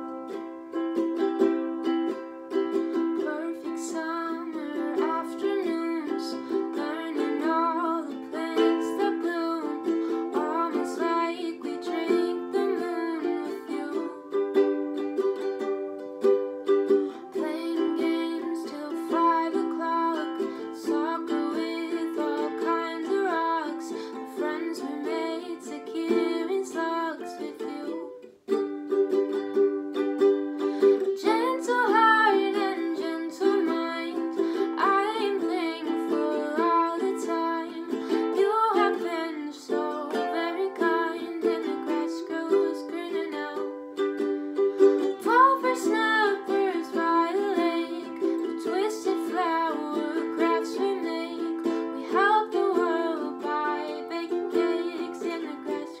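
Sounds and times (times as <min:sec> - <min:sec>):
girl singing: 0:00.0 - 0:56.0
strummed ukulele chords: 0:00.0 - 0:56.0.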